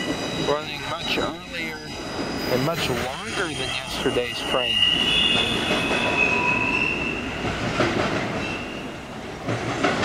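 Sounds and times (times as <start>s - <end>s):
train wheels squealing on rails: 0.0s - 9.1s
train rumble and clatter: 0.0s - 10.0s.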